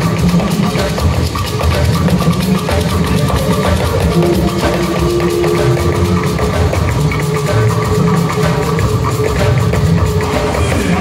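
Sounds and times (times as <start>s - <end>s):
gospel band music: 0.0s - 11.0s.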